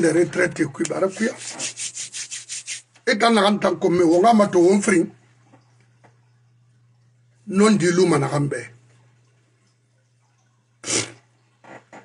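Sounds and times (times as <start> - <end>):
person speaking: 0.0 - 5.2
soft scratchy rubbing strokes: 1.1 - 2.9.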